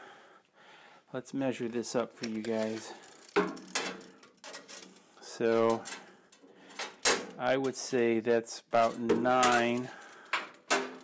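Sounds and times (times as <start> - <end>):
tape measure clicking and scraping: 2.2 - 3.8.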